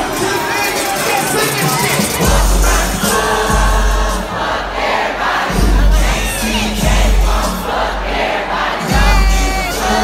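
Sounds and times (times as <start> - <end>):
concert crowd shouting: 0.0 - 10.0
loud rap music: 0.0 - 10.0.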